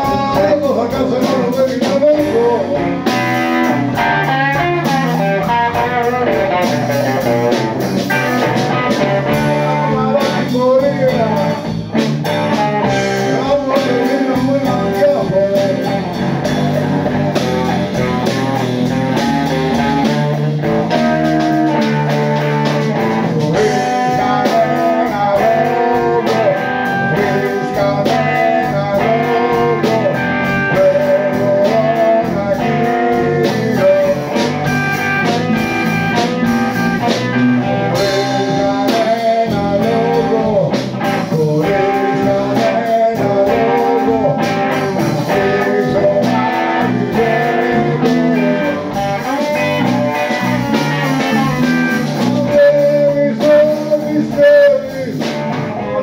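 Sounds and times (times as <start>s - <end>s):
bass guitar: 0.0s - 56.0s
drum kit: 0.0s - 56.0s
electric guitar melody: 0.0s - 56.0s.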